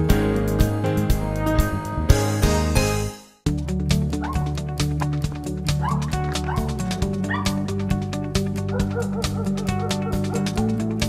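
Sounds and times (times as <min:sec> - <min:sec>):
background music with steady beat: 0:00.0 - 0:11.0
dog barking in short yelps: 0:05.8 - 0:06.7.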